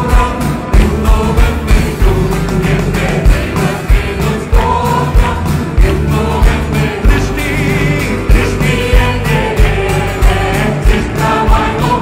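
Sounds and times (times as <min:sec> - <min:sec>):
kick drum beat: 0:00.0 - 0:12.0
people singing: 0:00.0 - 0:12.0
worship band playing: 0:00.0 - 0:12.0.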